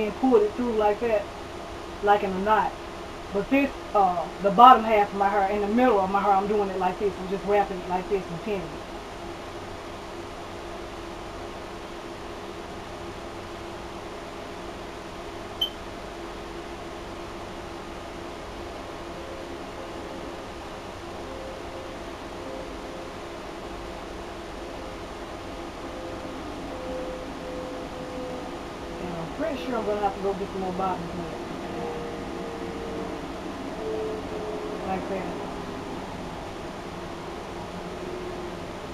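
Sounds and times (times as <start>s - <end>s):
fan humming: 0.0s - 38.9s.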